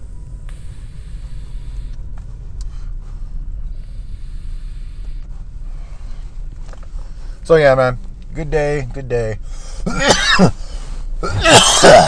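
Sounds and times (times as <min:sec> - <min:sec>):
car cabin rumble: 0:00.0 - 0:12.0
breathy hisses: 0:00.5 - 0:02.0, 0:02.7 - 0:06.4.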